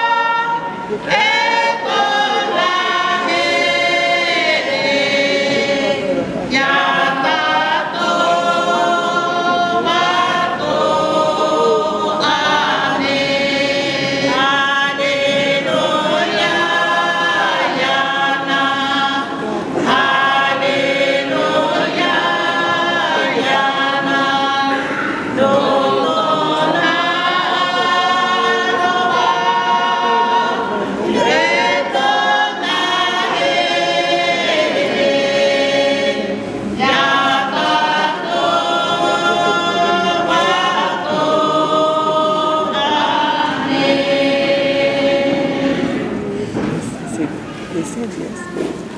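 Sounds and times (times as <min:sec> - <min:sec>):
choir singing a hymn: 0:00.0 - 0:48.9.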